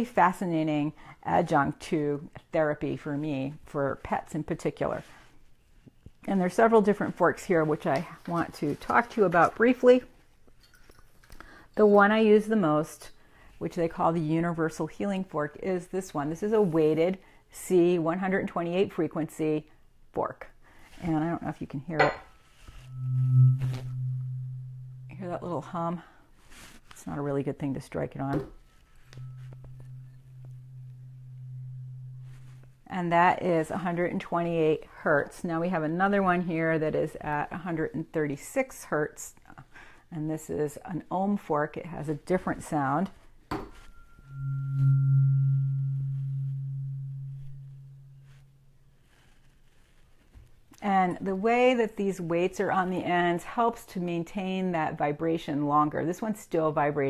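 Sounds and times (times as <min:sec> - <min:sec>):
faint higher ring: 0:22.0 - 0:25.5, 0:29.0 - 0:32.9, 0:43.8 - 0:49.0
tuning fork humming: 0:22.0 - 0:25.7, 0:29.0 - 0:32.9, 0:43.8 - 0:49.2.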